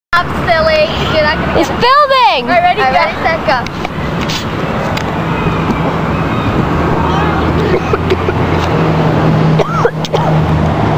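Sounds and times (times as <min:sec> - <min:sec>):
constant rushing noise: 0:00.2 - 0:10.9
high voice-like squeal: 0:05.2 - 0:08.3.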